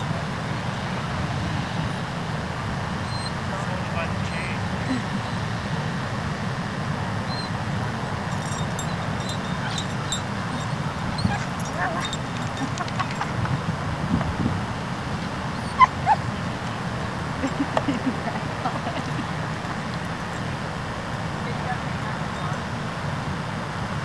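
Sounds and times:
outdoor background noise: 0.0 - 24.0
faint distant voices: 3.2 - 6.2, 7.4 - 23.4
faint dog barks and yips: 8.4 - 13.6, 15.5 - 16.5.

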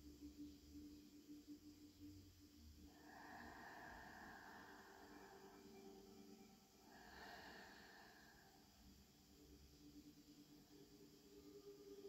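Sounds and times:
faint low hum: 0.0 - 12.0
slow breathing: 2.8 - 12.0.

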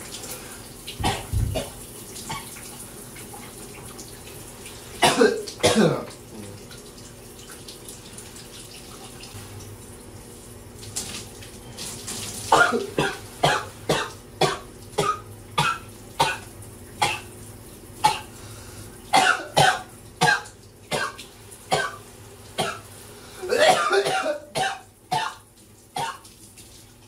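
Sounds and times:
shower water running: 0.0 - 27.0
man coughing: 5.0 - 6.1, 23.4 - 25.4.

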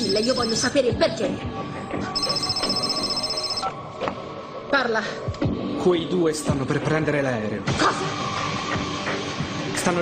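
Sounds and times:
mobile phone ringing: 0.0 - 0.8, 2.2 - 3.8.

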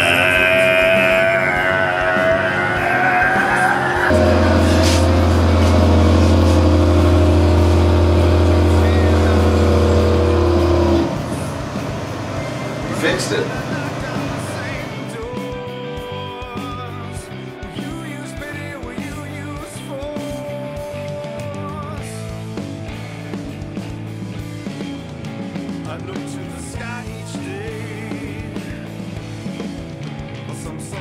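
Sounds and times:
quiet music: 0.0 - 23.2
loud steady low drone: 1.4 - 15.1
wavering voice-like tone: 1.6 - 10.3.

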